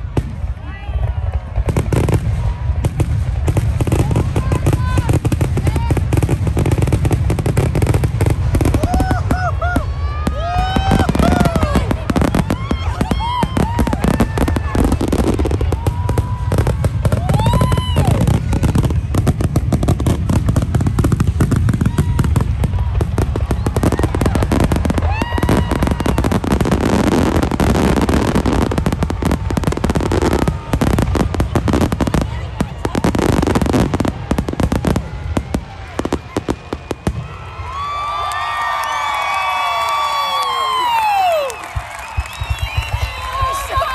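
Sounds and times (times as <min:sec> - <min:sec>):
fireworks crackling pops: 0:00.0 - 0:43.9.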